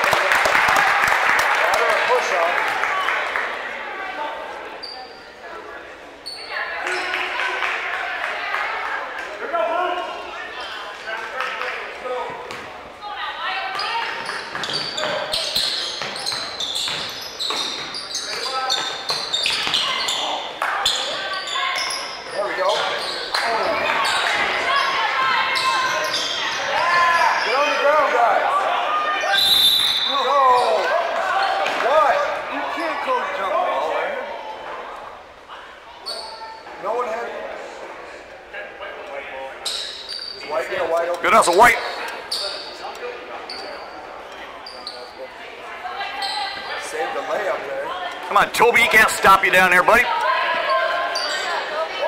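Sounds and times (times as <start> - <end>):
referee's whistle: 29.2 - 30.8.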